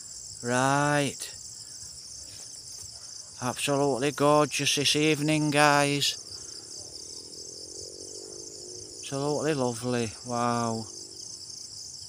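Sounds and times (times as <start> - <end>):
high-pitched insect chorus: 0.0 - 12.0.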